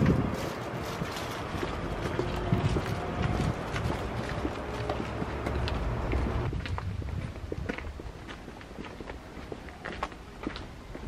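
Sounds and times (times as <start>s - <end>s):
footsteps on pavement: 0.0s - 11.0s
street noise hum: 0.0s - 11.0s.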